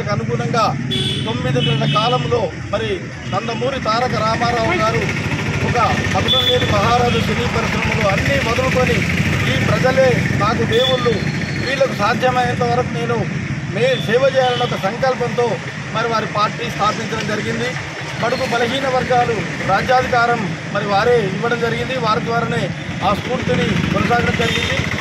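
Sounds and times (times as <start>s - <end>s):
low traffic rumble: 0.0s - 25.0s
man speaking: 0.0s - 25.0s.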